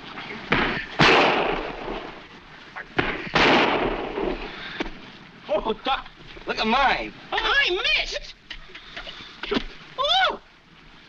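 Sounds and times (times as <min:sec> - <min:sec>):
rifle shots: 0:00.6 - 0:02.2, 0:03.0 - 0:04.5.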